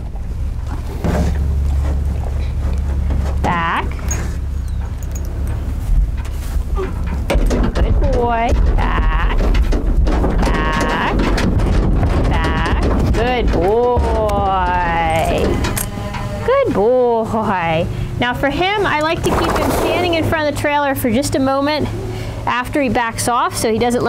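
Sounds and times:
hooves on trailer floor: 0:00.0 - 0:16.9
steady low rumble: 0:00.0 - 0:24.0.

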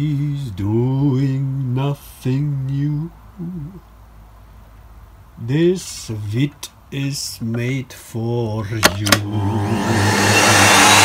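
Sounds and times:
vacuum cleaner power button click: 0:08.8 - 0:09.5
vacuum cleaner motor whoosh: 0:09.3 - 0:11.0.

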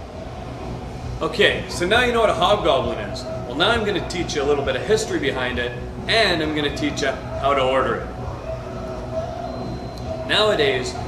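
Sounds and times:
steady low hum: 0:00.0 - 0:11.0
faint held tones: 0:07.2 - 0:11.0.

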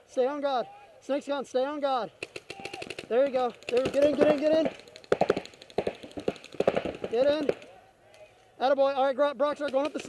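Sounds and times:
paintball markers firing: 0:02.2 - 0:08.2, 0:09.6 - 0:10.0.

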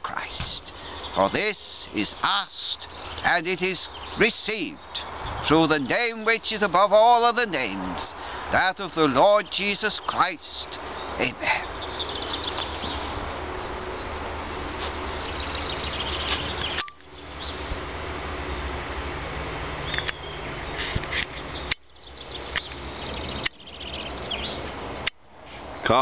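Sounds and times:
birds chirping: 0:00.0 - 0:26.0
low wind rumble: 0:00.0 - 0:26.0.

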